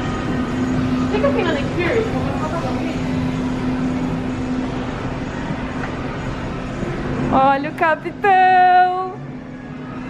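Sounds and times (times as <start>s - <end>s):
steady indoor hum: 0.0s - 10.0s.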